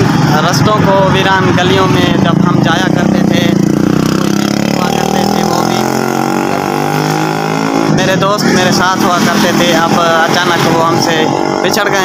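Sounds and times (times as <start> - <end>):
vehicle engine passing: 0.0 - 12.0.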